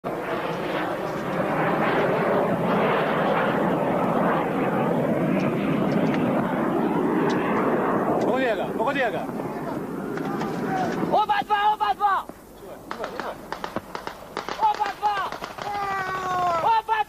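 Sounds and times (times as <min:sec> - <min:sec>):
jet flying overhead: 0:00.0 - 0:17.0.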